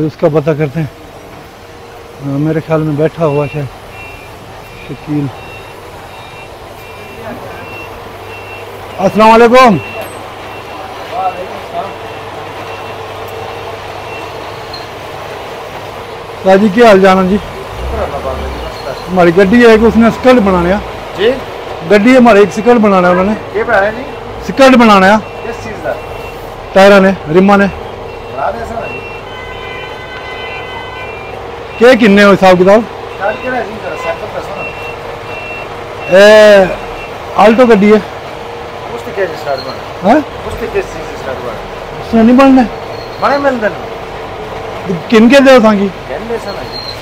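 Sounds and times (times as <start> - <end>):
distant voices: 0.0 - 47.0
reversing alarm beeping: 3.0 - 15.0, 22.7 - 29.6, 30.5 - 32.3, 33.1 - 37.6
faint high beep: 3.2 - 10.8.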